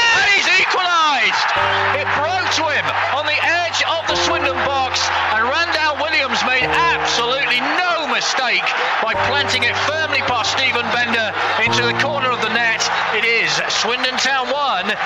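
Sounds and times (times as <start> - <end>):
excited football commentary: 0.0 - 15.0.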